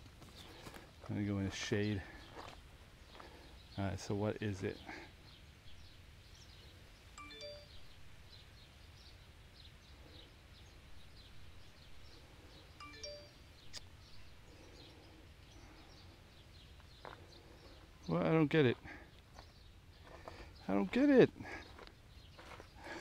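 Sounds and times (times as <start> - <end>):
faint bird chirps: 4.8 - 18.3
short chime of clear tones: 7.2 - 7.9, 12.8 - 13.7.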